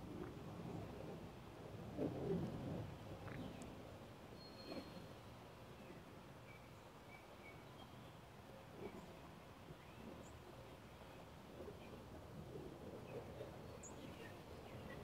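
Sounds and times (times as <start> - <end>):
bird chirps: 4.4 - 5.1.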